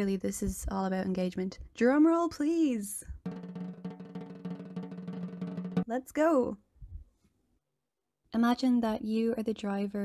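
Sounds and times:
drum roll: 0:03.2 - 0:05.9.

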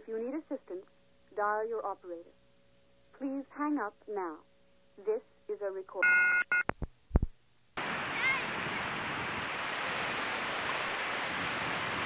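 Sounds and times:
telephone off-hook warning tone: 0:06.0 - 0:06.6
ocean surf: 0:07.8 - 0:12.0
wind: 0:07.8 - 0:12.0.

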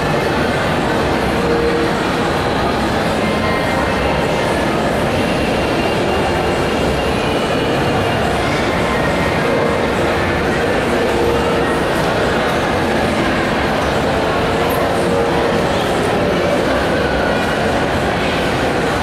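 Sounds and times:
large indoor crowd din: 0:00.0 - 0:19.0.

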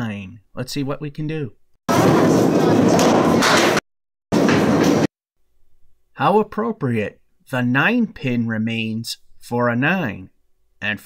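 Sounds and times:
ball rolling down wooden lane: 0:01.9 - 0:05.1.

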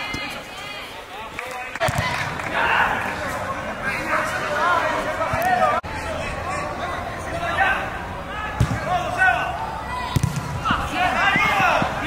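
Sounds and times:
players shouting: 0:01.8 - 0:12.0
football being kicked: 0:08.6 - 0:08.9, 0:10.1 - 0:10.8.

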